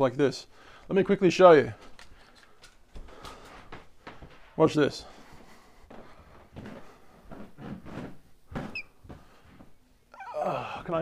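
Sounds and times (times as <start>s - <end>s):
knocks and bumps on furniture: 6.0s - 9.7s.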